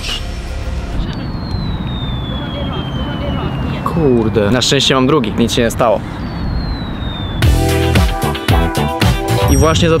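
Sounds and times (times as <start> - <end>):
low rumble of city traffic: 0.3 - 7.9
whistle sliding down in pitch: 1.1 - 3.9, 6.3 - 7.6.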